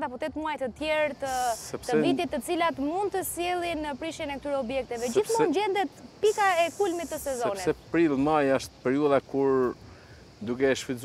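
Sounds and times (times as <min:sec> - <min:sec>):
woman speaking: 0:00.0 - 0:07.7
faint high hiss: 0:00.0 - 0:11.0.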